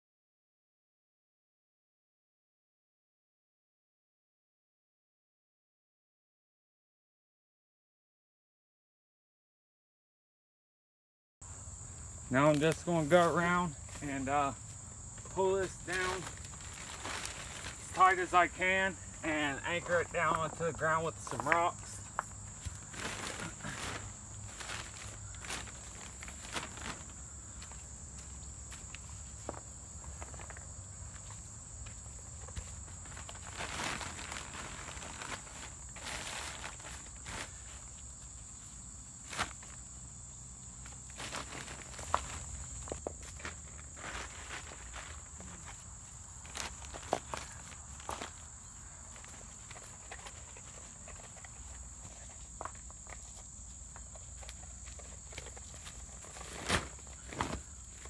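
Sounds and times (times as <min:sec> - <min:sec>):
insects buzzing: 0:11.4 - 0:58.0
plastic sheet rustling: 0:15.6 - 0:18.8, 0:22.8 - 0:27.2, 0:33.0 - 0:37.9, 0:41.1 - 0:42.7, 0:55.3 - 0:57.6.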